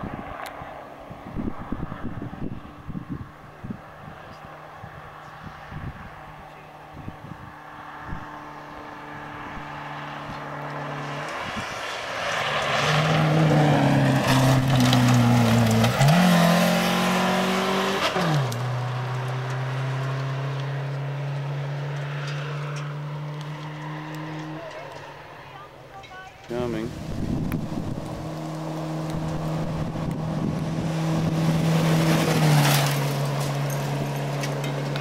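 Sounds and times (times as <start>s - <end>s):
rally car engine passing: 0.0s - 35.0s.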